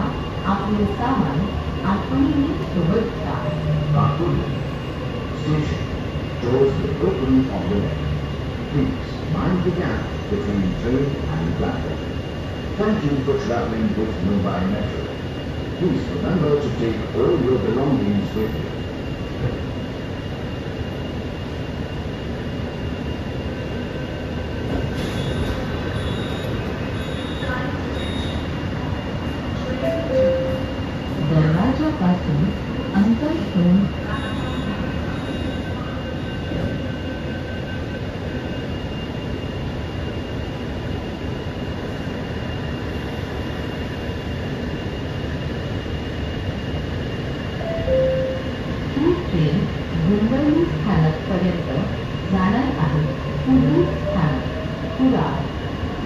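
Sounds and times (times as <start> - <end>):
train car rumbling: 0.0 - 56.0
faint high steady tones: 29.7 - 31.7, 47.6 - 49.2.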